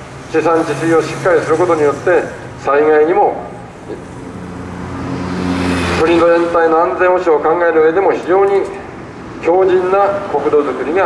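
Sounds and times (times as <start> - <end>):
vehicle engine passing: 0.0 - 7.9
road noise: 0.0 - 11.0.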